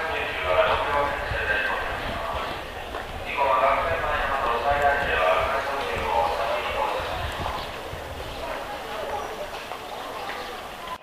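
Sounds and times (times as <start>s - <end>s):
public address announcement: 0.0s - 11.0s.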